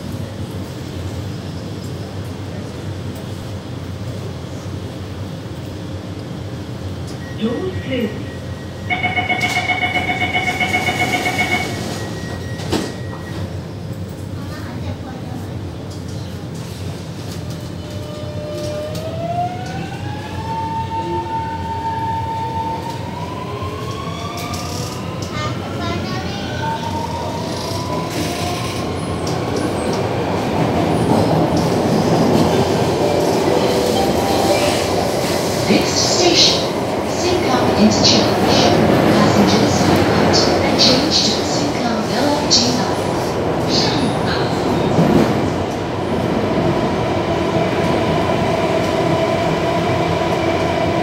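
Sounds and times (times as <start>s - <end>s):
train background hum: 0.0s - 51.0s
rapidly pulsing warning beep: 8.2s - 13.4s.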